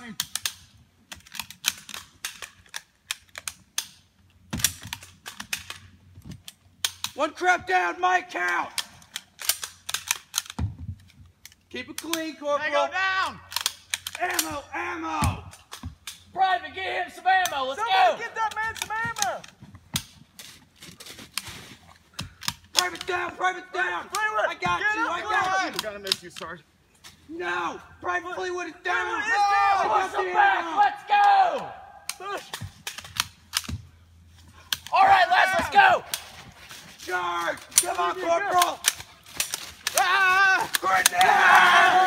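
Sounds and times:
toy gun cracks: 8.8 - 10.6.

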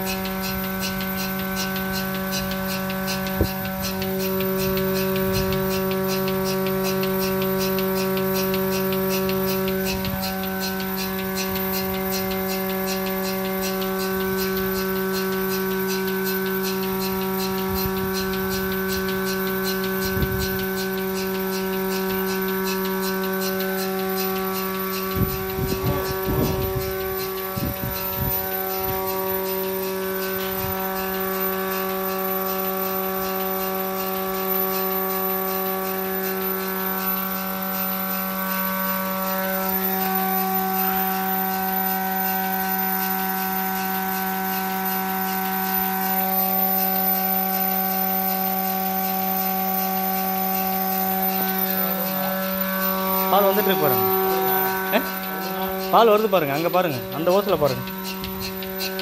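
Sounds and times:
vacuum pump motor humming: 0.0 - 59.0.

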